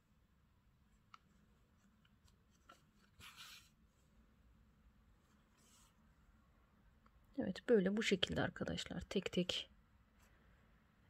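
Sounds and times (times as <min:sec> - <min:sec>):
soft rustle of fabric: 0:00.8 - 0:06.6.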